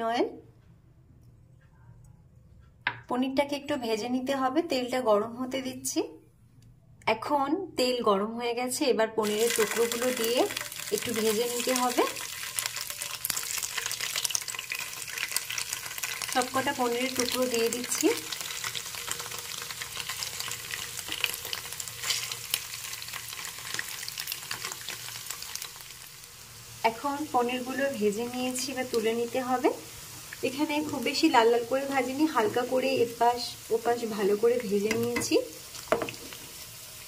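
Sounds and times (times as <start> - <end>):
woman talking: 0.0 - 0.4, 3.1 - 6.2, 7.0 - 12.2, 16.4 - 18.2, 26.8 - 29.8, 30.4 - 35.5
cheese cubes frying in hot oil: 9.2 - 37.0
spatula turning food in pan: 9.2 - 37.0.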